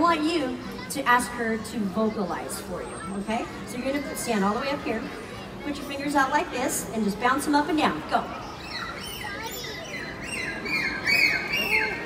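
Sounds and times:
dolphin whistles and squeaks: 0:08.4 - 0:12.0.

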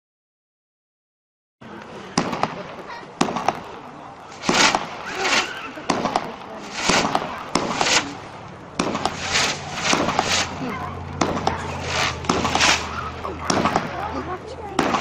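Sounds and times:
fireworks shots: 0:02.1 - 0:15.0
noisy firework bursts: 0:02.1 - 0:15.0.

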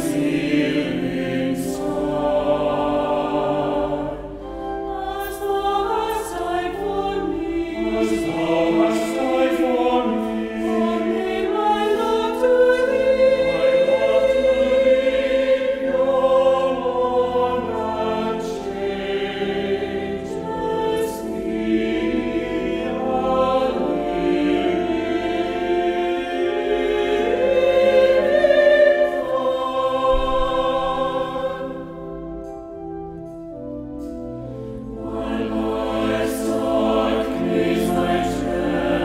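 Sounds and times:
choir singing: 0:00.0 - 0:39.0.

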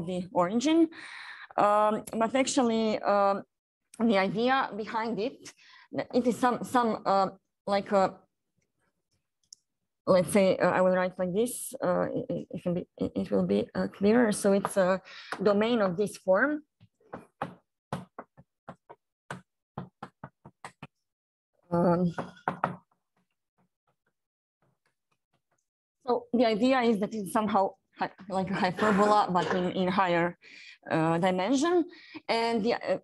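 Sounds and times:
chalk tapping on blackboard: 0:17.1 - 0:21.0.

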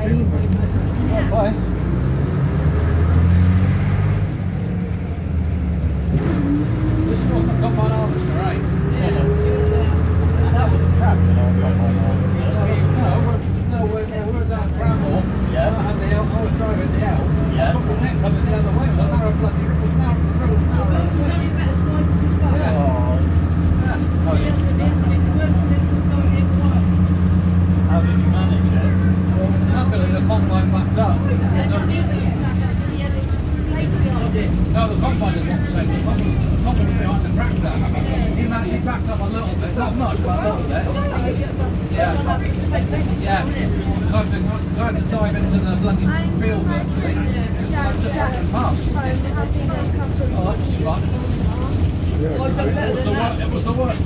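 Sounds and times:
bus engine with rising whine: 0:00.0 - 0:54.0.

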